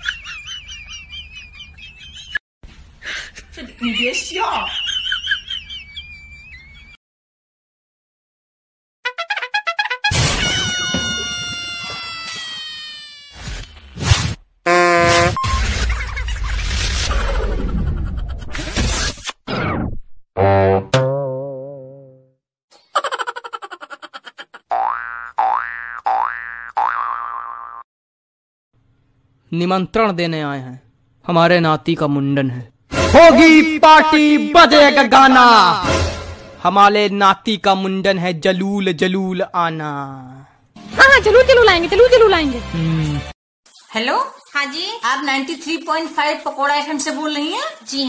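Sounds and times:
cartoon wobbling boing: 20.4s - 22.4s, 24.7s - 27.8s.

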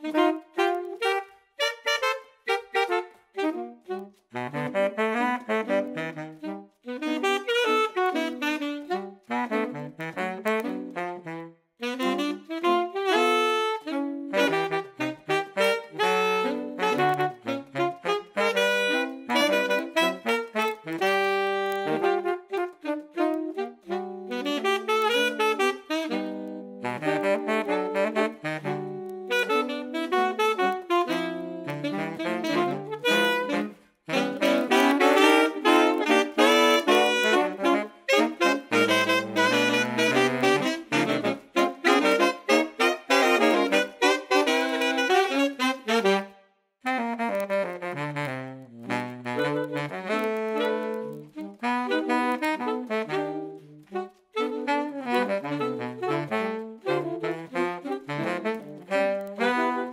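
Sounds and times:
saxophone quartet playing jazz: 0.0s - 59.9s.

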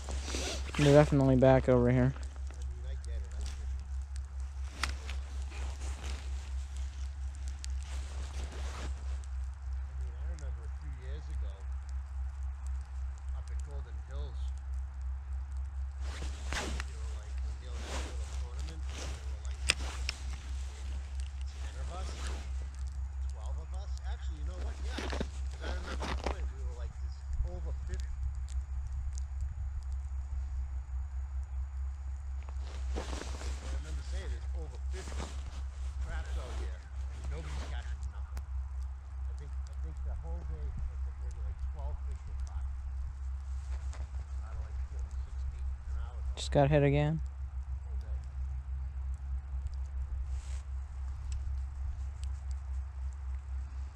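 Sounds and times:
wind rumble on microphone: 2.2s - 46.4s
clothing rustles and knocks: 32.5s - 34.3s.

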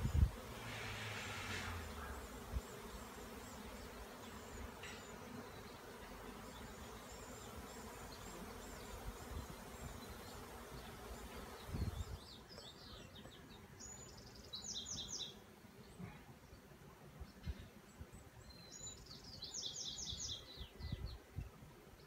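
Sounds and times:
honeybees buzzing: 0.0s - 12.6s.

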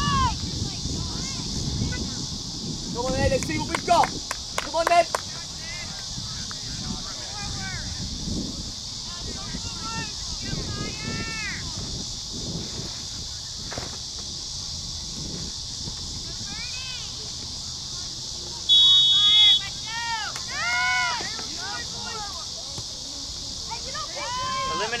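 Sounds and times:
people shouting: 0.0s - 0.4s, 9.0s - 11.8s, 18.7s - 22.5s, 23.7s - 25.0s
referee's whistle blast: 18.7s - 19.8s.

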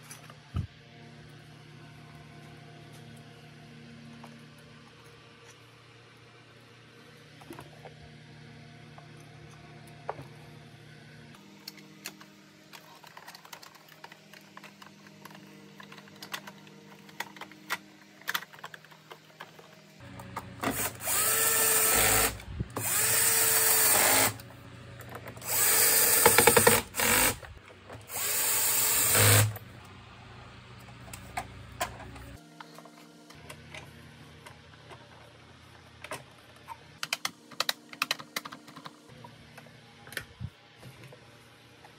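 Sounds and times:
electric screwdriver whine: 20.6s - 24.4s, 25.4s - 27.4s, 28.1s - 29.6s.

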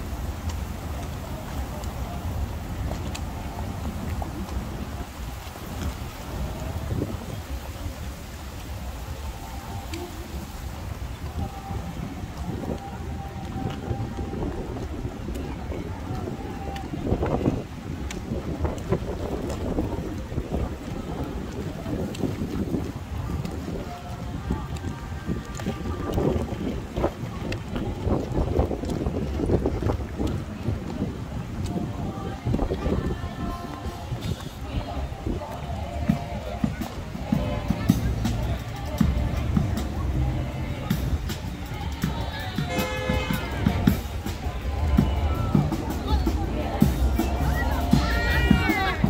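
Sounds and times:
wind buffeting microphone: 0.0s - 49.0s
horse hooves on pavement: 11.0s - 49.0s.

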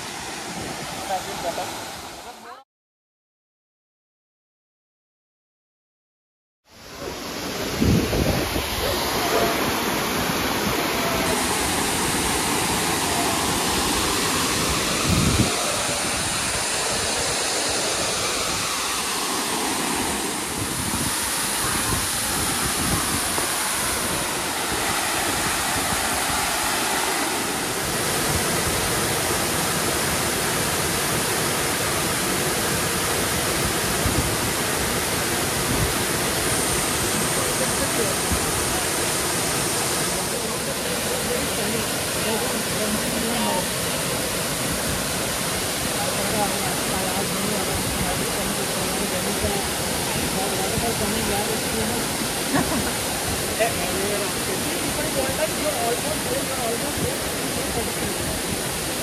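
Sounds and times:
waterfall rushing: 0.0s - 2.5s, 6.8s - 59.0s.

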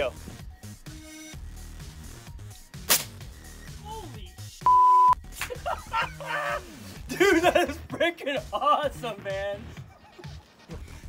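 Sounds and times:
air rifle shot: 2.9s - 3.2s.

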